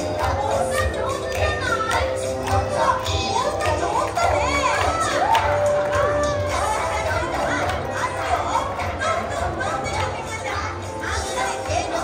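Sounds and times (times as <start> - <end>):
stage music with low beat: 0.0 - 12.0
children shouting and cheering: 3.3 - 10.6.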